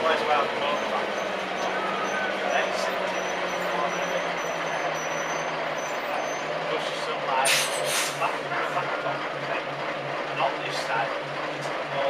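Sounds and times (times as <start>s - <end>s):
bus engine running: 0.0s - 12.0s
air brakes hissing: 7.4s - 8.4s.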